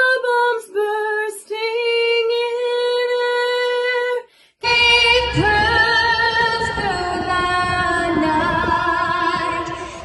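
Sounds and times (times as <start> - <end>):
woman singing into a microphone: 0.0 - 10.0
woman singing unaccompanied: 0.0 - 10.0.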